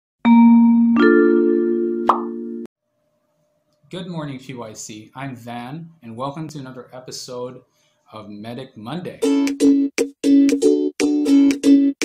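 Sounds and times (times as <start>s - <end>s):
bell-like mallet percussion chord: 0.2s - 2.7s.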